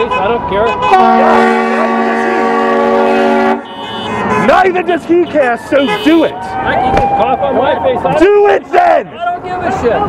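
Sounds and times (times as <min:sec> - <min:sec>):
car horn honking: 0:00.0 - 0:06.6.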